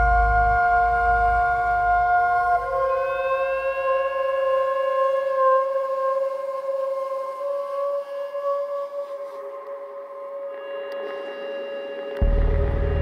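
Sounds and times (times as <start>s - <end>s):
low rumble: 12.2s - 13.0s.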